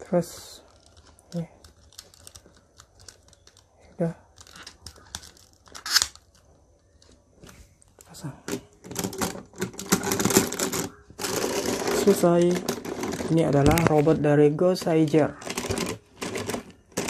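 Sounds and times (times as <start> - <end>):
plastic rattling and clattering: 0.6 - 17.0.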